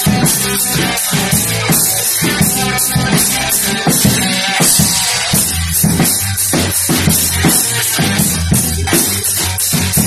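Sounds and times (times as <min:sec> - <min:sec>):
drum kit playing rock beat: 0:00.0 - 0:10.0
rock backing track: 0:00.0 - 0:10.0.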